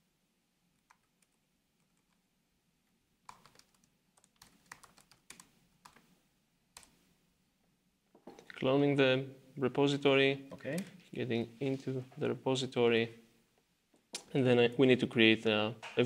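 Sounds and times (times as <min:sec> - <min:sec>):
typing on computer keyboard: 0:00.8 - 0:02.2, 0:03.3 - 0:06.0.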